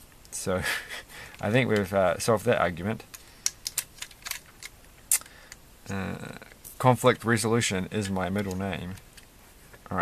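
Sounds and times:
plastic bricks clicking together: 3.1s - 5.3s.

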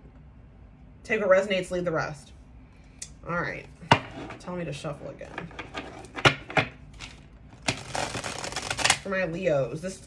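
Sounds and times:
cards being shuffled: 6.9s - 9.0s.

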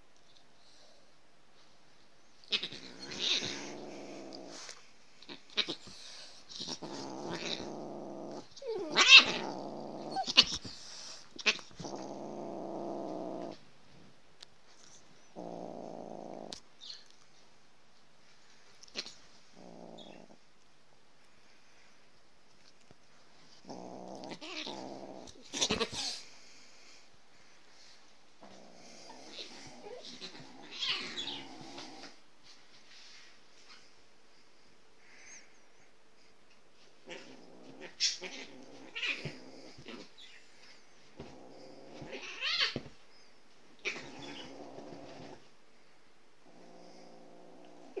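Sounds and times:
animals growling: 2.5s - 13.6s, 15.3s - 16.6s, 19.0s - 20.4s, 23.6s - 26.3s, 28.4s - 32.2s, 37.0s - 40.4s, 41.2s - 42.4s, 43.8s - 45.5s, 46.4s - 48.0s.

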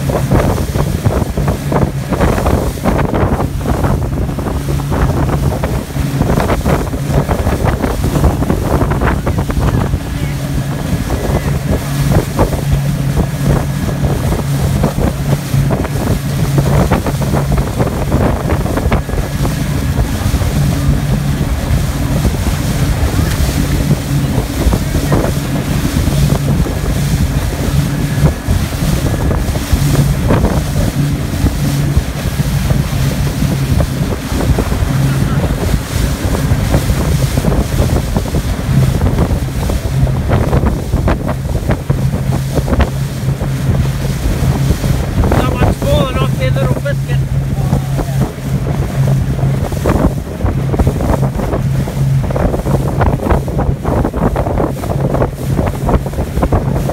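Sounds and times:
motor boat engine drone: 0.0s - 56.9s
water rushing against hull: 0.0s - 56.9s
wind buffeting microphone: 0.0s - 56.9s.

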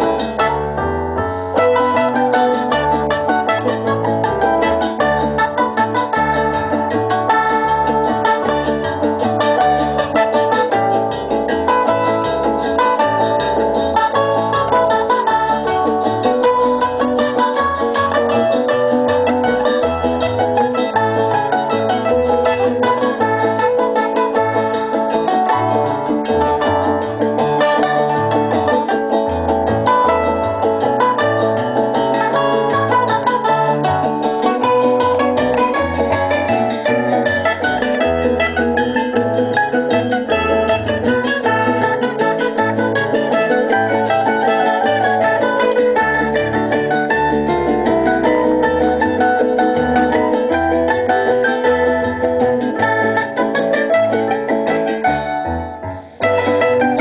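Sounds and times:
steady moving bass line: 0.0s - 54.3s
plucked strings melody: 0.0s - 57.0s.

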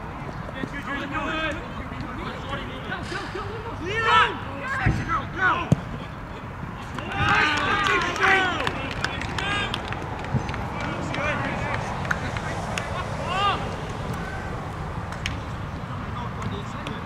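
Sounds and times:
players shouting and cheering: 0.6s - 17.0s.

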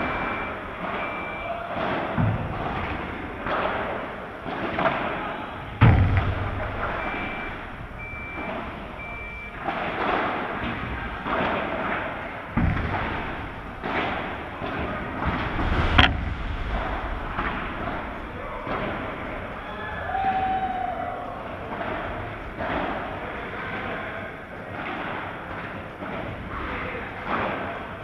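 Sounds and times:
ball bouncing off glass walls: 5.8s - 15.5s
short high beeps: 6.9s - 9.6s
rackets hitting ball: 7.7s - 16.1s.

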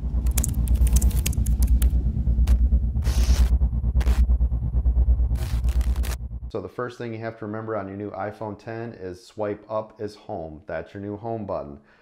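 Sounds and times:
glitchy crackles and clicks: 0.0s - 4.5s, 5.2s - 6.4s
fast-pulsing deep bass rumble: 0.0s - 6.7s
bursts of static hiss: 3.0s - 4.3s, 5.3s - 6.2s.

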